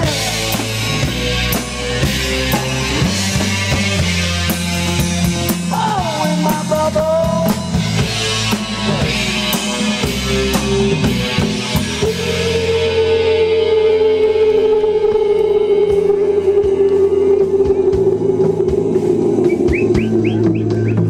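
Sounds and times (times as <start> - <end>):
drum kit: 0.0 - 21.0
live band playing: 0.0 - 21.0.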